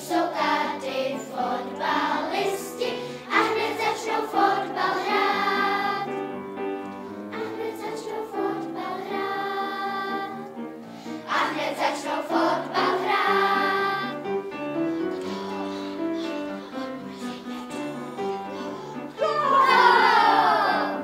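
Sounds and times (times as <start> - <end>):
children's choir singing: 0.0 - 6.4, 7.1 - 21.0.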